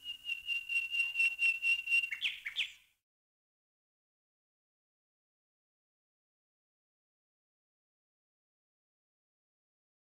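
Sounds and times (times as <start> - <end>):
bird trilling call: 0.0 - 2.8.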